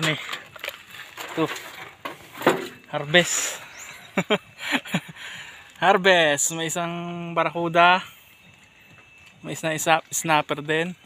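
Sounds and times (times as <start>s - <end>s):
man speaking: 0.0s - 0.3s, 2.8s - 3.7s, 5.8s - 8.1s, 9.4s - 11.0s.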